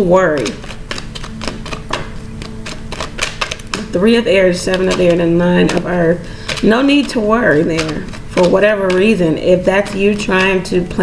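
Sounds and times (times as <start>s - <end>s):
cards being shuffled: 0.3s - 11.0s.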